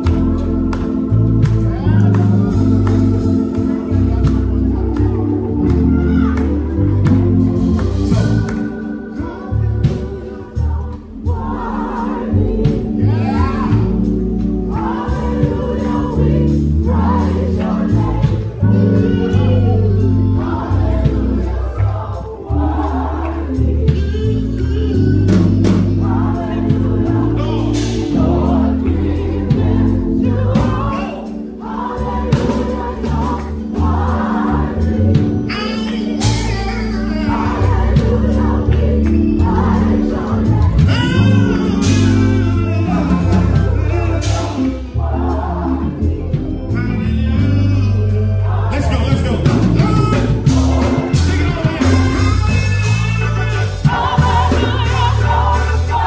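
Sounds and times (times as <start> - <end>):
gospel choir singing: 0.0 - 56.0
regular beat: 0.0 - 56.0
sustained bass line: 0.0 - 56.0.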